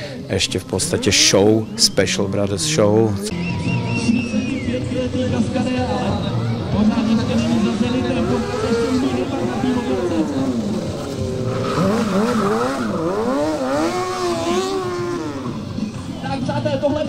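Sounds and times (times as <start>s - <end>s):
motorcycle engine revving: 5.2s - 16.4s.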